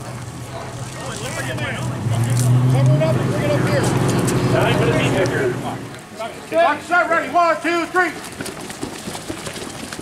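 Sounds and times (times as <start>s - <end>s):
people talking: 0.4s - 8.2s.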